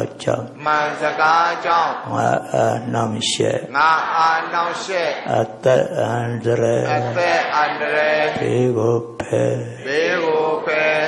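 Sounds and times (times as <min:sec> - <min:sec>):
man chanting into a microphone: 0:00.0 - 0:10.9.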